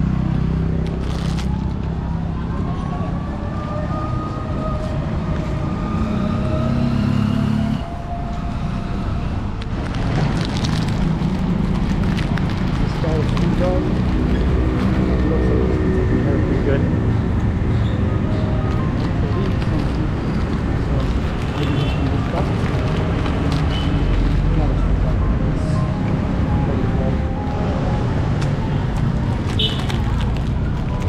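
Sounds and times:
vehicle engines passing: 0.0s - 31.0s
people's voices: 18.2s - 27.8s.

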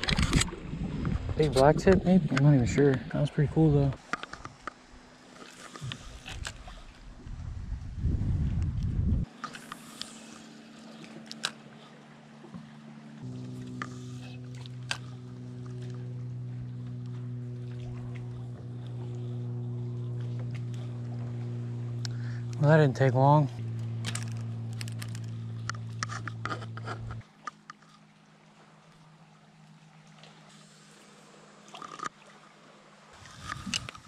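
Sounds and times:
wind rumble on microphone: 0.0s - 4.6s, 5.8s - 9.3s, 33.2s - 34.0s
electric motor humming: 9.3s - 27.2s.

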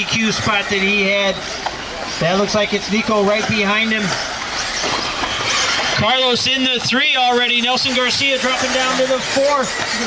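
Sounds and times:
electric motors and tyres hissing: 0.0s - 10.0s
high motor whines: 0.0s - 10.0s.

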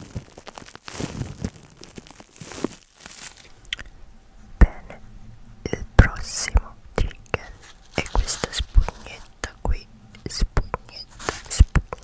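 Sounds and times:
person whispering close-up: 3.6s - 12.0s.

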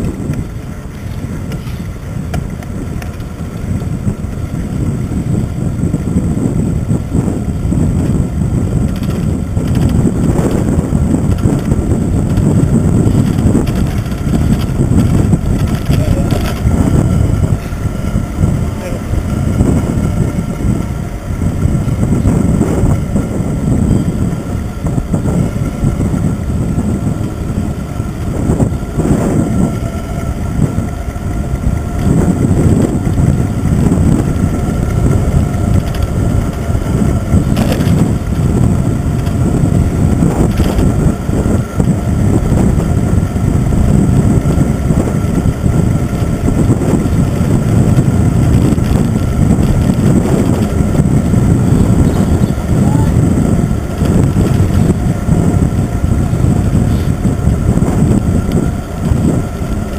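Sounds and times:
road rumble: 0.0s - 59.9s
wind buffeting microphone: 0.0s - 59.9s.

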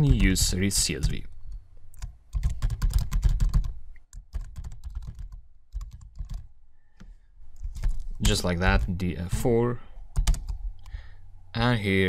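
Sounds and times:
computer keyboard typing: 1.9s - 6.5s, 7.6s - 8.9s, 10.2s - 10.9s.

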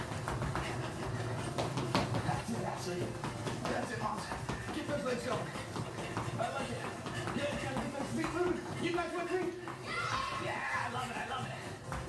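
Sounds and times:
quick footsteps on tiled floor: 0.0s - 12.0s.

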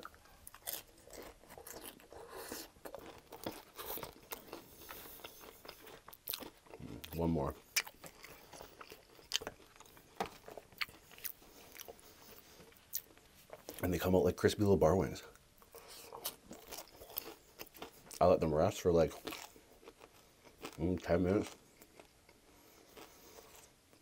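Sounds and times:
tortilla chips crunching: 0.0s - 14.0s, 16.1s - 23.8s.

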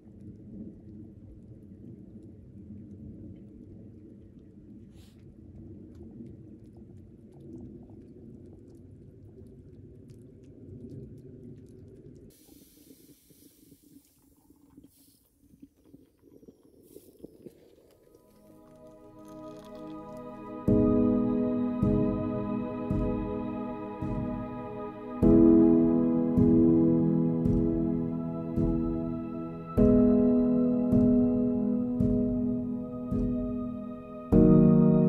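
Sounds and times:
drizzle ticks: 5.1s - 25.5s
high hiss: 12.3s - 15.4s.

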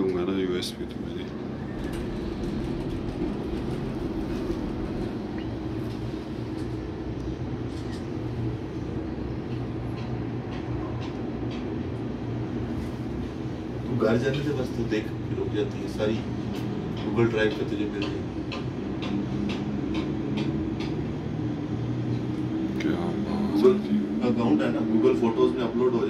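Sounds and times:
cable car low rumbling hum: 0.0s - 26.0s.

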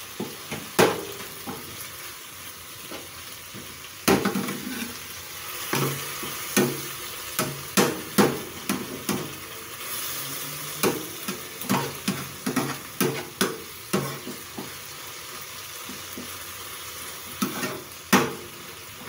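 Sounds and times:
food sizzling in a frying pan: 0.0s - 19.0s
metal spatula scraping a pan: 4.2s - 6.4s, 17.3s - 18.0s.

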